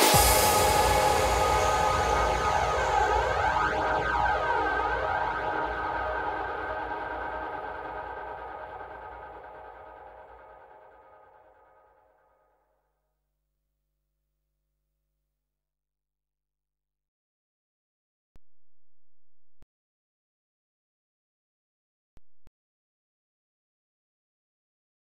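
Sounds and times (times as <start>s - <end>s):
dark psytrance music: 0.0s - 11.1s
synthesizer drone with sweep: 0.0s - 11.4s.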